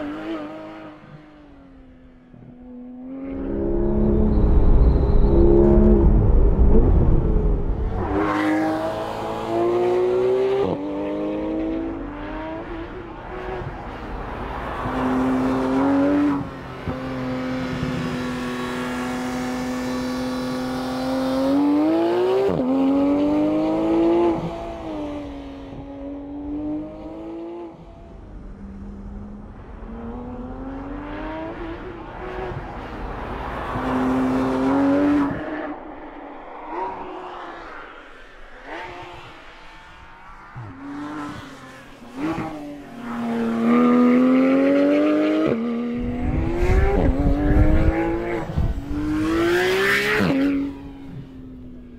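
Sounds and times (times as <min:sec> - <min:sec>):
car engine revving: 0:02.6 - 0:51.8.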